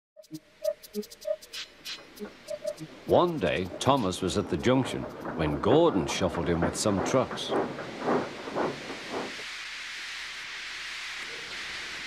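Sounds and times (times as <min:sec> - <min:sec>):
steam locomotive hissing steam: 0:01.5 - 0:12.0.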